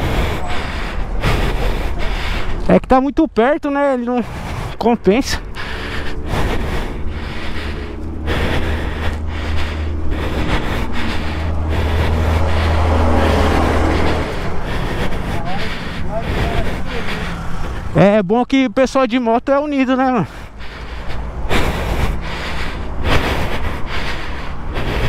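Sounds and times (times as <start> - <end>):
motorcycle engine rumble: 0.0 - 18.1.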